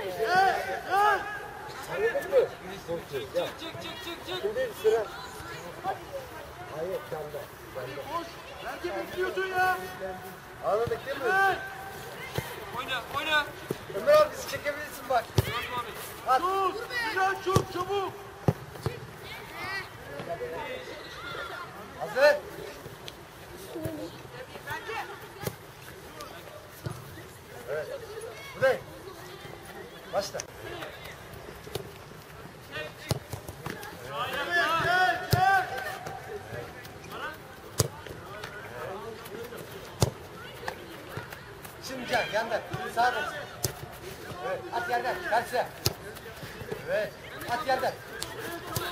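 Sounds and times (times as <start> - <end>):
footballs being kicked: 15.2 - 15.8, 32.9 - 48.9.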